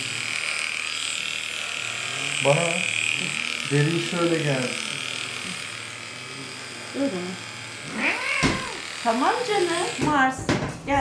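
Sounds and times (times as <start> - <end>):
electric clippers buzzing: 0.0 - 11.0
cat meowing: 7.9 - 8.9.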